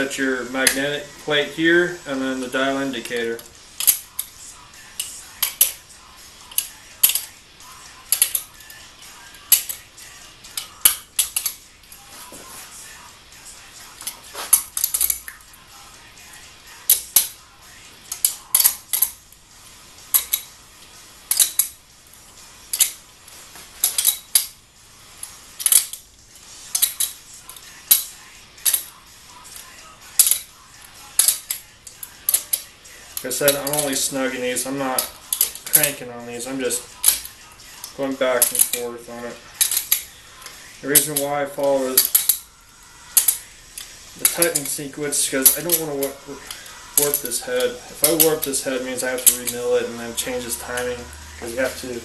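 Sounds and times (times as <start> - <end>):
hand ratchet clicking: 2.1 - 12.0, 13.8 - 15.5, 16.7 - 19.2, 20.0 - 20.6, 21.2 - 21.8, 22.7 - 23.1, 23.8 - 24.6, 25.2 - 52.0.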